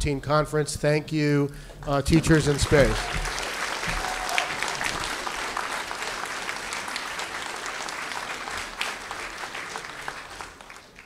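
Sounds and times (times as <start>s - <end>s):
audience applauding: 1.9s - 11.0s.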